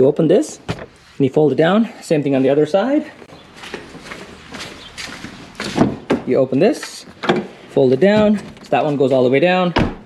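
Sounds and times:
soft footsteps: 2.4 - 9.1.

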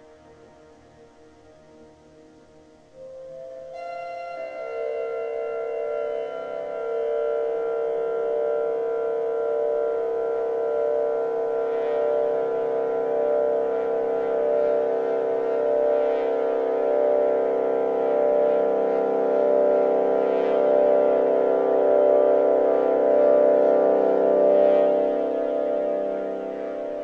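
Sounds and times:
synthesizer ambient drone: 0.0 - 27.0.

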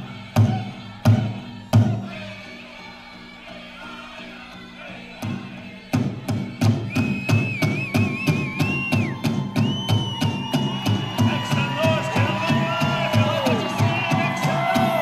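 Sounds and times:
big drum beating: 6.0 - 15.0.

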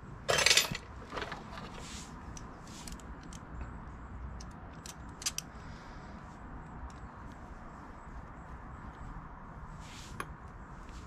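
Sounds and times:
metallic clicks of hand tools: 4.4 - 5.5.

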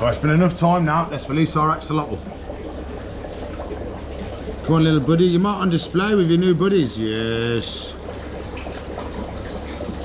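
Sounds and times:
water bubbling around filter: 0.0 - 10.0
water pouring into tank: 0.0 - 10.0.

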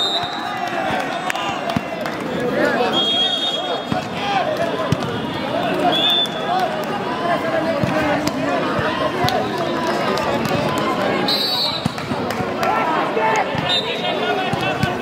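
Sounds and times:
referee whistle blast: 0.0 - 0.5, 2.9 - 3.8, 11.3 - 11.9
people shouting and chattering: 0.0 - 15.0
ball bouncing on court: 4.8 - 5.2.

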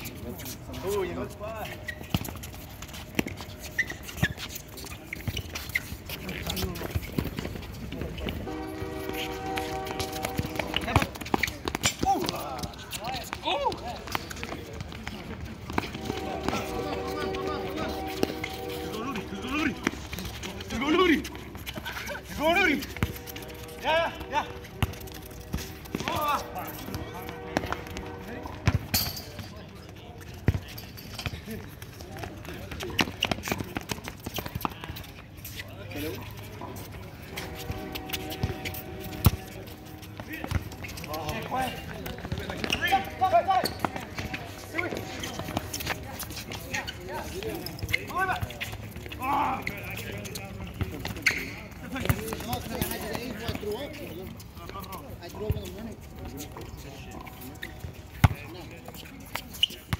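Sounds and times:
ball being kicked: 58.2 - 58.4.

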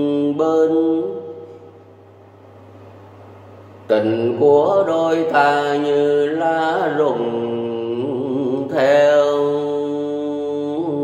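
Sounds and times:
man singing: 0.0 - 1.5, 3.9 - 11.0
steady low hum: 0.0 - 11.0.

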